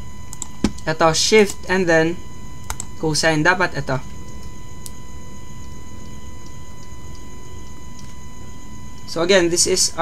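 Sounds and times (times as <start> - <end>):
electrical hum with high whine: 0.0 - 10.0.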